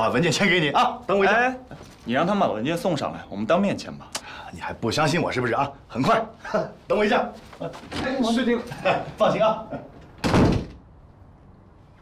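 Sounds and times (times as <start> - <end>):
wooden door shutting with thud: 10.2 - 10.8.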